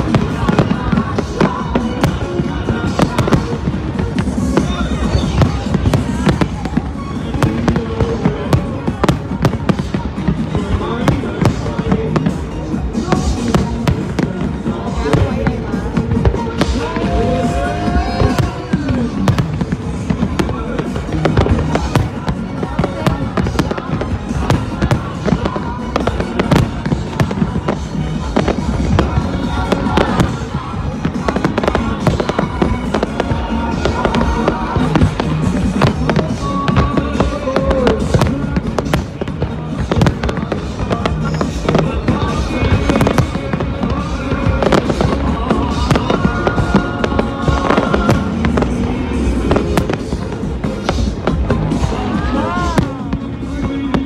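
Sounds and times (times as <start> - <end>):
fireworks bangs and crackles: 0.0 - 54.0
music playing: 0.0 - 54.0.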